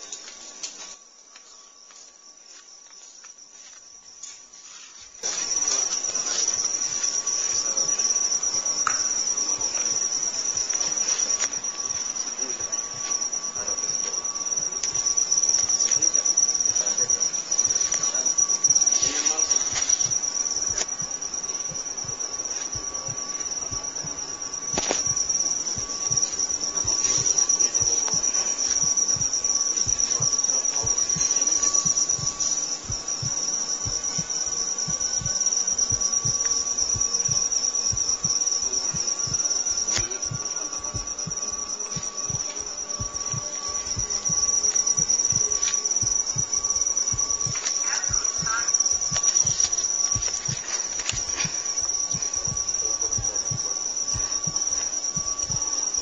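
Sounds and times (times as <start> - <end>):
insects trilling: 0.0 - 56.0.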